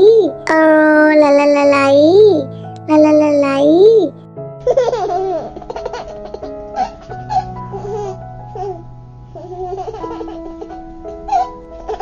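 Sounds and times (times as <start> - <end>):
background music: 0.0 - 12.0
baby laughing: 1.6 - 8.8, 9.4 - 12.0.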